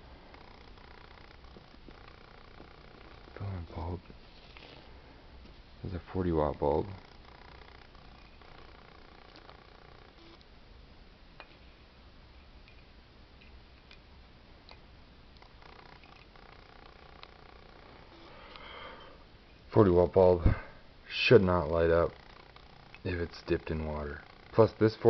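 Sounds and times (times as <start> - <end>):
faint pitched hum: 0.0 - 25.0.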